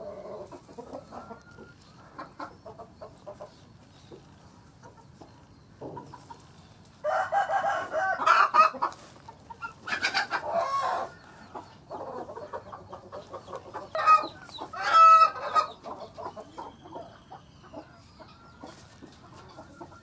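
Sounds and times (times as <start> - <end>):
chickens calling: 0.0 - 20.0
chickens clucking: 0.0 - 20.0.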